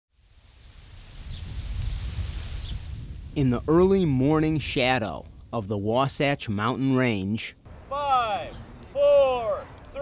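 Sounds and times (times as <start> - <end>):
soft hiss: 0.2 - 5.9
low wind-like rumble: 0.2 - 6.4.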